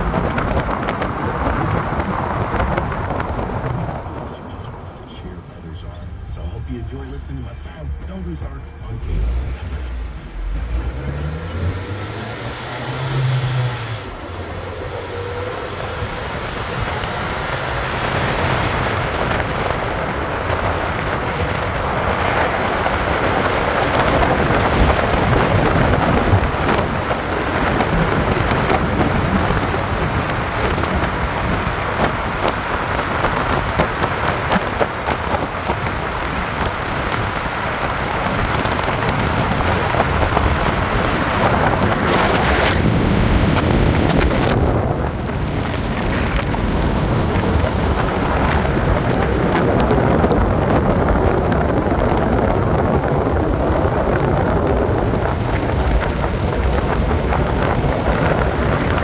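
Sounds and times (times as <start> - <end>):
car engine: 0.0 - 59.0
tyres and wind rushing: 0.0 - 59.0.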